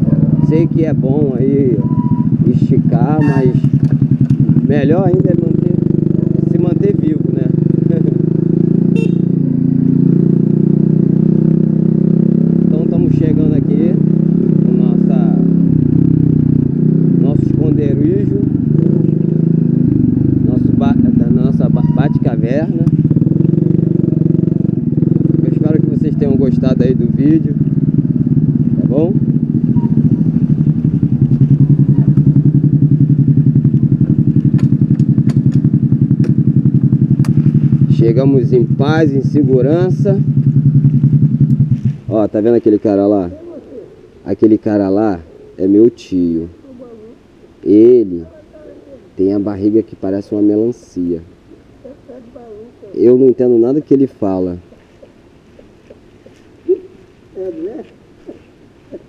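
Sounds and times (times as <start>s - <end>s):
moped engine revving: 0.0s - 59.0s.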